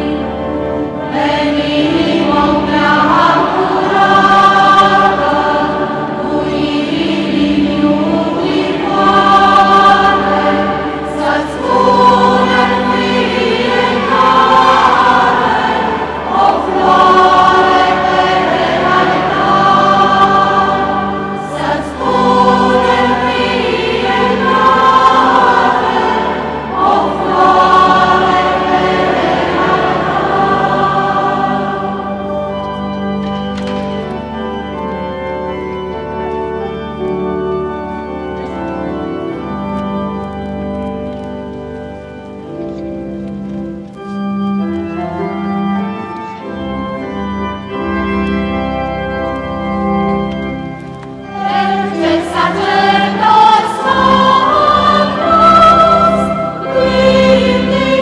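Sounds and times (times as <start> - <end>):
choir singing a hymn: 0.0 - 37.1, 44.8 - 58.0.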